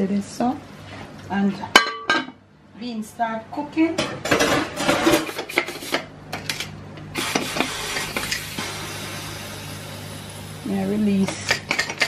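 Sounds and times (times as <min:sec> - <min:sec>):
pots and lids clattering: 0:04.1 - 0:06.7, 0:11.4 - 0:12.0
pressure cooker steam hiss: 0:07.2 - 0:10.9.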